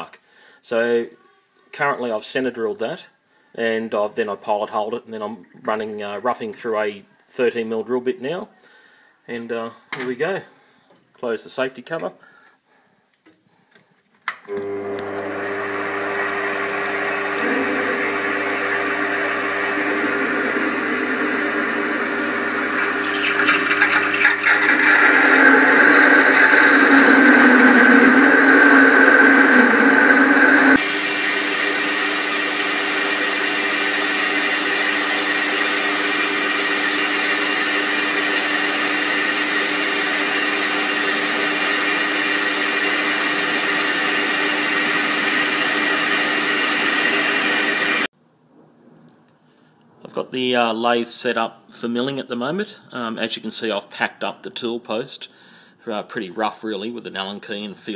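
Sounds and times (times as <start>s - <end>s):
lathe tool bit cutting with whine: 14.6s - 48.1s
drill bit cutting aluminium on lathe: 15.8s - 48.1s.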